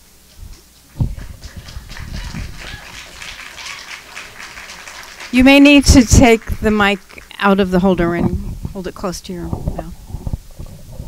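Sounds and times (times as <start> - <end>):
microphone rubbing and knocking: 7.9 - 11.0
microphone thump: 8.0 - 8.8.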